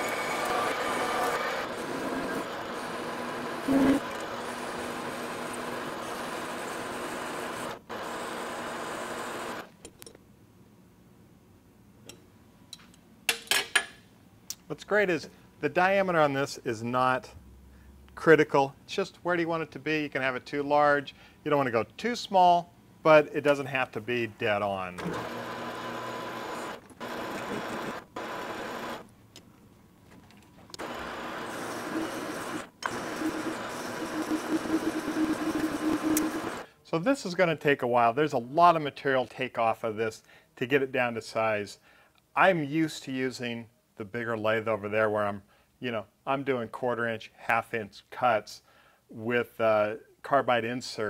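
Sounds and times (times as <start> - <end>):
metal lathe running: 0.0 - 7.7, 25.0 - 29.0, 30.8 - 36.6.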